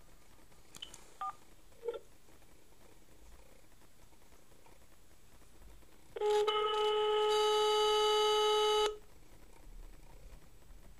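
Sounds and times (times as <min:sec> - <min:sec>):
long steady phone tone: 0:01.2 - 0:02.0, 0:06.2 - 0:09.0.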